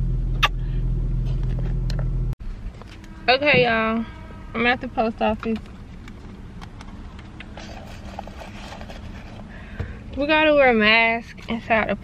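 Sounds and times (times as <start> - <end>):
car engine and air conditioning hum: 0.0 - 12.0.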